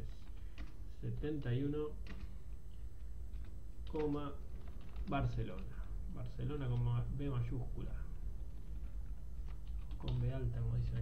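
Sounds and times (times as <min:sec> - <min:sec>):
computer keyboard keystrokes: 0:08.7 - 0:11.0.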